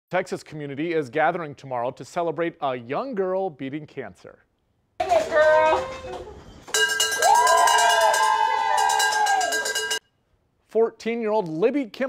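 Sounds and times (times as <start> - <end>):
handbell ringing rapidly: 6.8 - 10.0
people cheering and whooping: 7.1 - 10.0.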